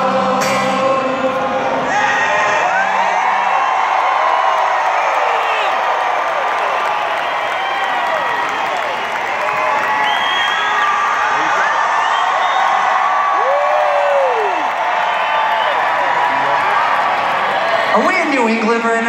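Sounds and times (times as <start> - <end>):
crowd cheering and whooping: 1.7 - 18.0
long rising whoop: 11.6 - 15.8.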